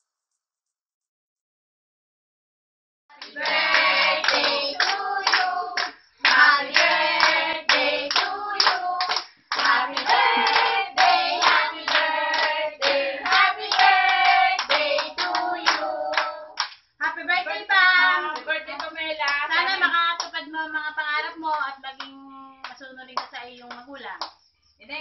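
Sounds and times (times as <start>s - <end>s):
women and children singing: 3.1s - 23.3s
hands clapping: 3.2s - 16.9s, 21.5s - 24.4s.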